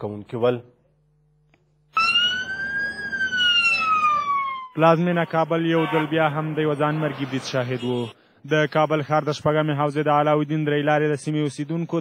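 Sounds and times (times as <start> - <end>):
emergency siren wailing: 2.0 - 6.1
street noise: 2.0 - 11.5.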